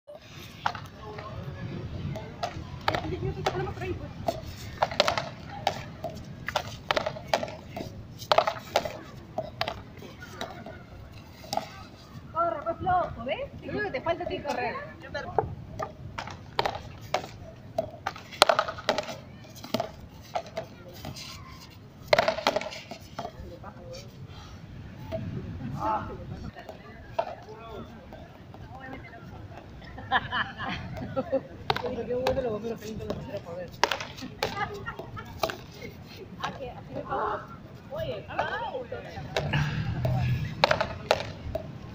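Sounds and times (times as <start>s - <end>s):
faint voices: 0.1s - 41.9s
wind rumble on microphone: 1.0s - 4.8s, 24.6s - 26.6s
paddles striking ball: 4.3s - 9.8s, 15.8s - 21.2s, 22.1s - 23.4s, 33.1s - 34.6s, 39.4s - 41.7s
ball rebounding off concrete wall: 15.8s - 20.6s, 22.1s - 22.7s, 39.3s - 41.7s.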